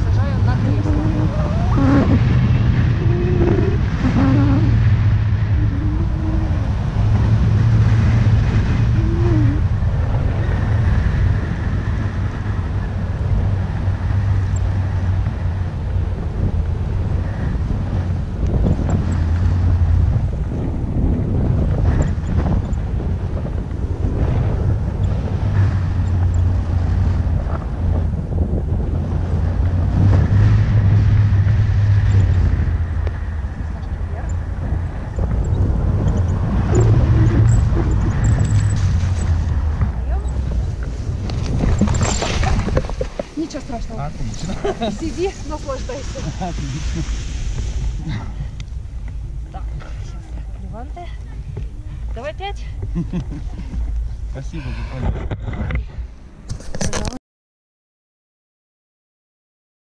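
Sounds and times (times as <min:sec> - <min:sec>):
wind rushing over microphone: 0:00.0 - 0:57.2.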